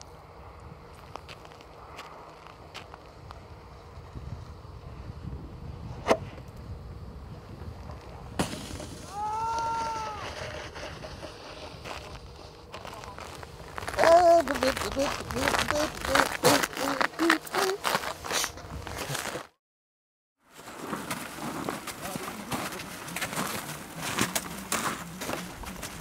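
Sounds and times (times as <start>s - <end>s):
wind rumbling on microphone: 0.0s - 16.9s, 18.5s - 19.3s
person whooping: 9.0s - 10.4s, 13.9s - 18.0s.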